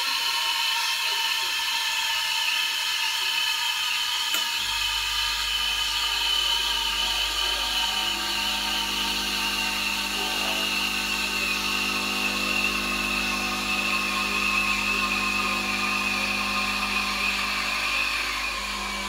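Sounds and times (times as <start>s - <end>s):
steam wand hissing: 0.0s - 19.0s
espresso pump humming: 4.0s - 19.0s.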